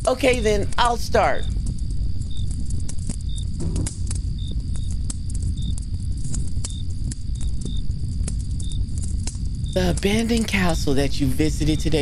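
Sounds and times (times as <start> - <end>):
campfire crackling: 0.0 - 12.0
crickets chirping: 0.0 - 12.0.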